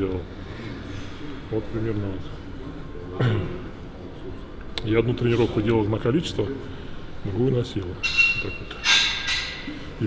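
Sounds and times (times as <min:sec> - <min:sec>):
gym weights clanking: 0:08.0 - 0:09.9.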